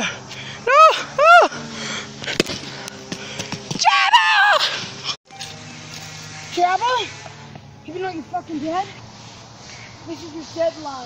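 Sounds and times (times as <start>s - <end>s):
person squealing: 0.6s - 1.7s, 3.8s - 4.8s
wavering high cry: 0.6s - 1.7s.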